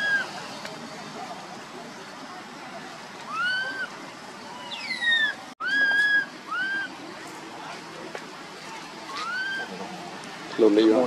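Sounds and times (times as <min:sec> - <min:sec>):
baby monkey coo calls: 0:00.0 - 0:00.4, 0:03.3 - 0:07.0, 0:09.1 - 0:09.8.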